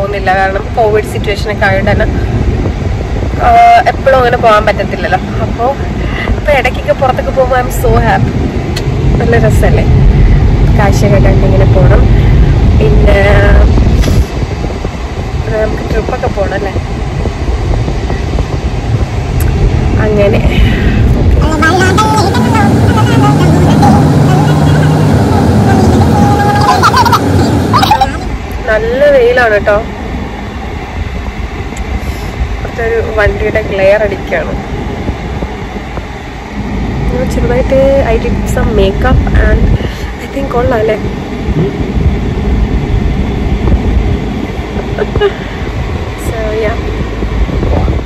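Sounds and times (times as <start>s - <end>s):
woman talking: 0.0s - 2.3s, 3.4s - 8.3s, 9.2s - 9.9s, 10.7s - 14.2s, 15.5s - 16.8s, 19.9s - 29.9s, 32.7s - 34.6s, 37.1s - 41.1s, 44.9s - 45.5s, 46.2s - 46.9s
car interior rumble: 0.0s - 48.0s.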